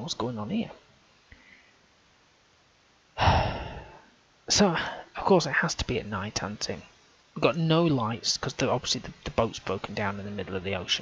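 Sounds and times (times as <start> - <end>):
man sighing: 3.2 - 4.1.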